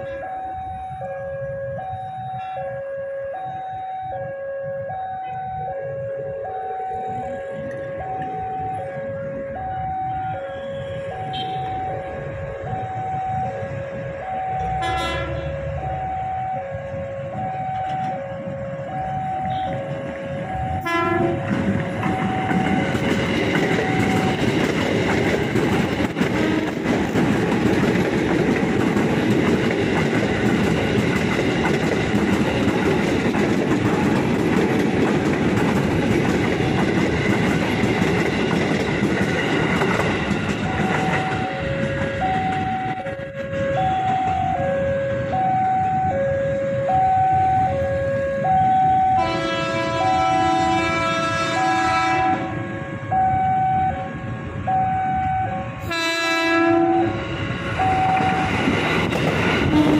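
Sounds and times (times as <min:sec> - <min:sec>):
train horn: 0:00.0 - 0:03.4, 0:04.1 - 0:22.8, 0:26.2 - 0:27.0, 0:47.5 - 0:58.4, 0:59.6 - 0:59.9
level-crossing alarm two tones: 0:00.0 - 0:24.6, 0:40.2 - 0:49.3, 0:52.6 - 0:56.0, 0:57.4 - 0:58.7
train wheels clattering on rails: 0:19.1 - 0:44.7, 0:57.4 - 0:59.9.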